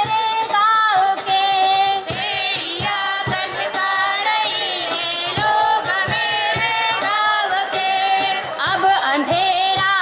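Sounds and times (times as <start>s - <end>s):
women singing into microphones: 0.0s - 10.0s.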